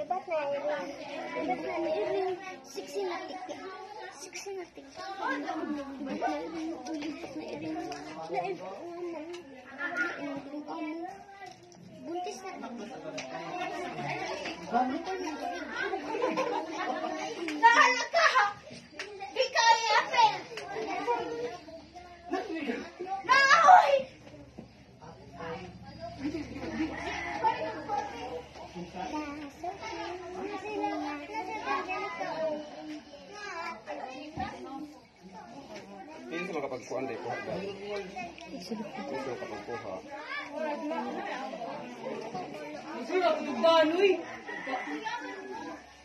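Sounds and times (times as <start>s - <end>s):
people chattering: 0.0s - 46.0s.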